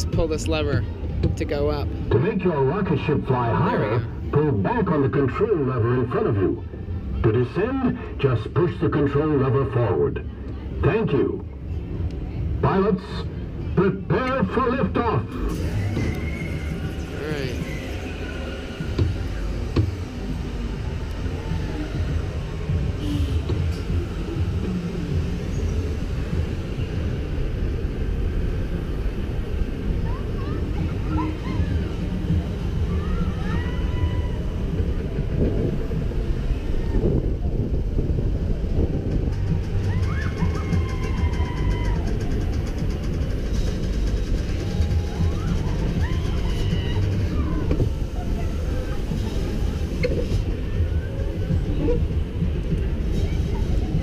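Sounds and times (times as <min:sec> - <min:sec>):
ride rumble: 0:00.0 - 0:54.0
wind rushing over microphone: 0:18.5 - 0:54.0
faint distant voices: 0:42.1 - 0:54.0.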